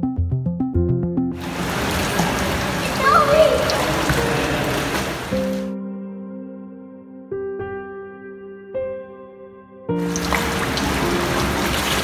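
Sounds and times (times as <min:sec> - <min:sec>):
background music with a beat: 0:00.0 - 0:01.4
splashing water in a pool: 0:01.4 - 0:05.7, 0:10.0 - 0:12.0
child calling: 0:02.8 - 0:04.2.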